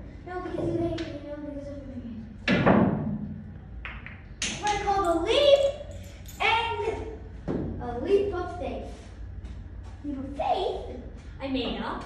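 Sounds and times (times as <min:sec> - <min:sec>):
pool cue striking ball: 0:02.4 - 0:04.8
billiard balls knocking together: 0:03.8 - 0:04.9.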